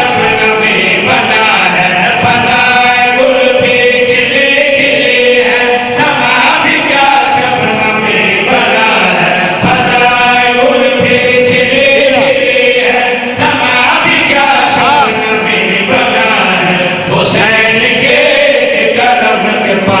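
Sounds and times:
men chanting into microphones: 0.0 - 20.0.

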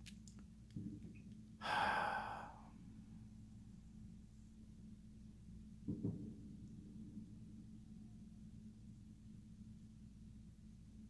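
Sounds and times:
faint electrical hum: 0.0 - 11.0
person sighing: 1.6 - 2.7.

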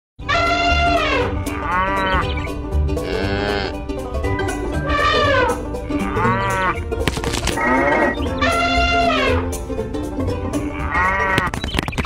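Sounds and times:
background music with steady beat: 0.2 - 11.6
short bleat: 3.0 - 3.8.

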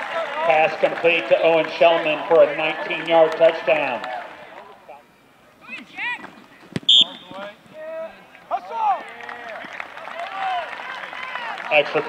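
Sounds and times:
foot kicking ball: 6.2 - 7.3
shrill whistle-like tone: 6.9 - 7.4.

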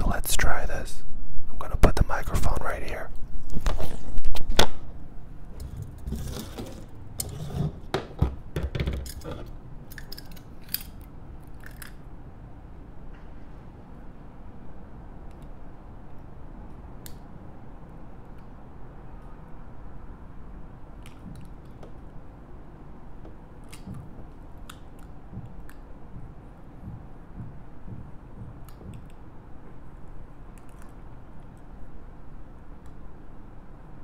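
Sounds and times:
low room hum: 0.0 - 34.0.

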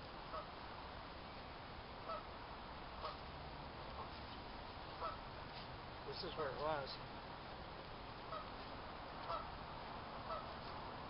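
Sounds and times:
low background hiss: 0.0 - 11.0
geese honking: 0.3 - 0.5, 2.0 - 2.3, 3.0 - 3.2, 5.0 - 5.2, 8.2 - 8.5, 9.3 - 9.5, 10.2 - 10.6.

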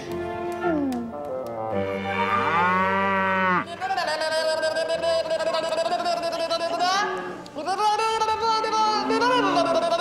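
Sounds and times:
cow mooing: 1.6 - 3.7, 8.9 - 10.0.

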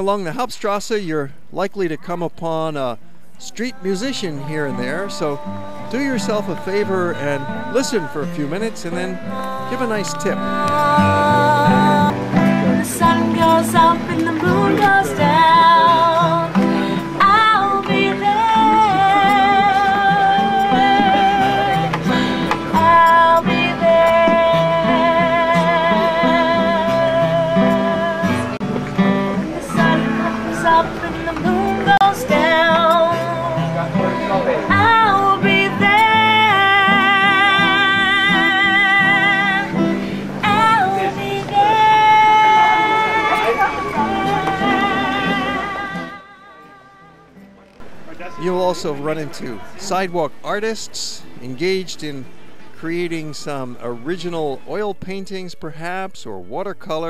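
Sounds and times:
acoustic guitar strumming: 1.9 - 57.0
woman singing: 3.4 - 28.6, 29.6 - 47.4.

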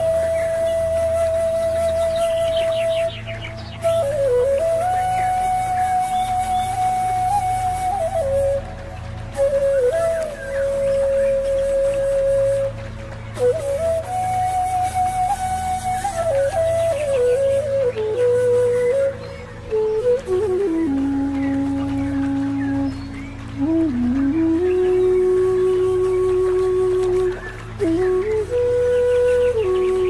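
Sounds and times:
flute holding long note: 0.0 - 30.0
low ambient drone: 0.0 - 30.0.

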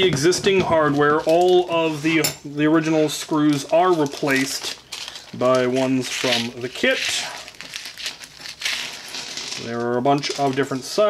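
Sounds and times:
plastic bag crinkling: 0.7 - 11.0.

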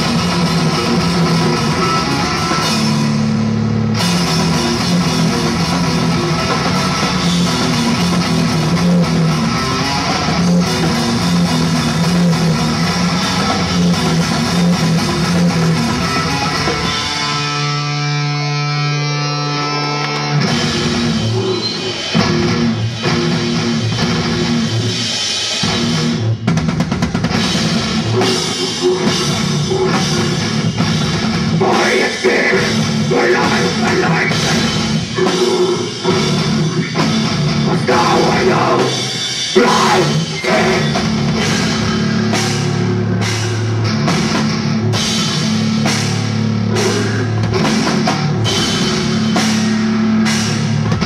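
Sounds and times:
pounding drum kit with cymbals: 0.0 - 17.9, 20.4 - 51.0
distorted guitars: 0.0 - 51.0
live rock band: 0.0 - 51.0.

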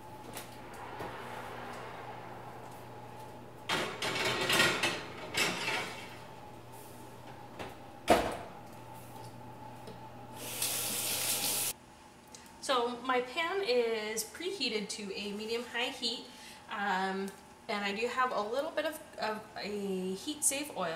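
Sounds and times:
kitchen faucet running: 10.4 - 11.7.

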